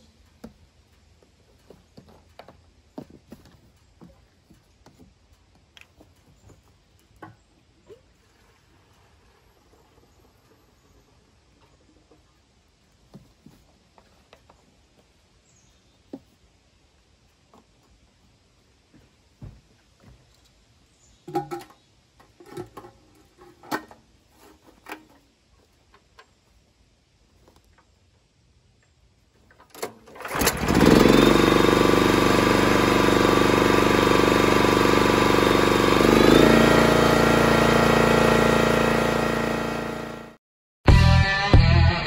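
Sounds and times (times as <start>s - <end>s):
small gas engine running: 30.0s - 40.4s.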